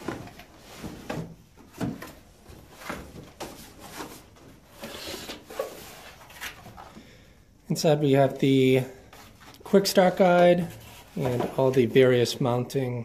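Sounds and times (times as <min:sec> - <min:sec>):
cardboard rustling: 0:00.0 - 0:07.0, 0:09.0 - 0:12.2.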